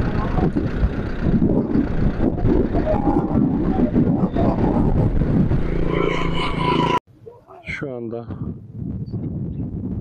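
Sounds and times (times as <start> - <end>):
engine drone: 0.0 - 7.0
wind buffeting: 0.0 - 7.0, 7.6 - 10.0
highway road noise: 0.0 - 7.7.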